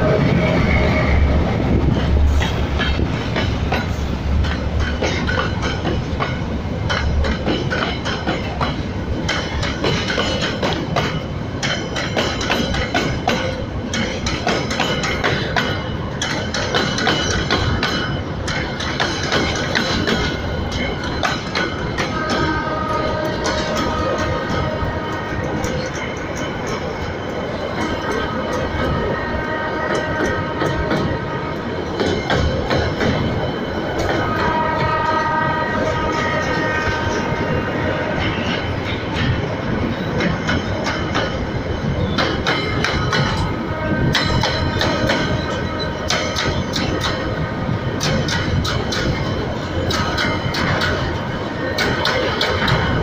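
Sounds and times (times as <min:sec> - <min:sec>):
freight train rumbling past: 0:00.0 - 0:53.0
wheels squealing on rails: 0:00.0 - 0:53.0
wheels clacking over rail joints: 0:01.4 - 0:53.0.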